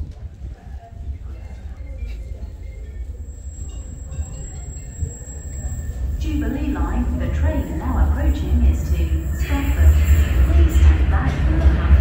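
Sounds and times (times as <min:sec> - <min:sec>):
underground train rumbling in tunnel: 0:00.0 - 0:12.0.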